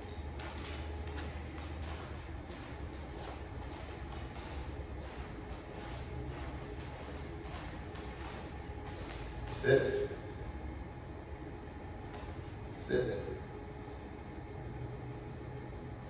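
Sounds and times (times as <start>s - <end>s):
dog claws tapping on floor: 0.0s - 9.7s
footsteps on hard floor: 0.0s - 9.7s
steady low hum: 0.0s - 16.0s.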